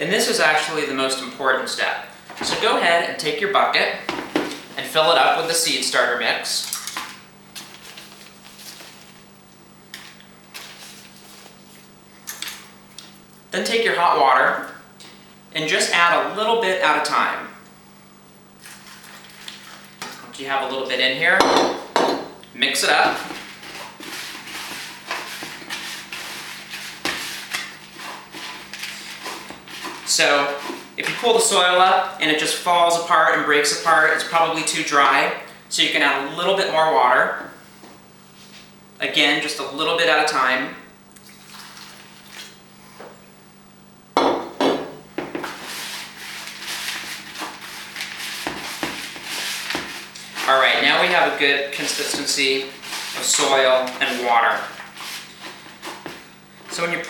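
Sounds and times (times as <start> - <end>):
hands mixing soil in plastic bucket: 18.6 - 20.0, 22.6 - 32.6, 45.2 - 57.0
water pouring: 41.2 - 42.6
glass pitcher knocking on tile: 44.2 - 45.5.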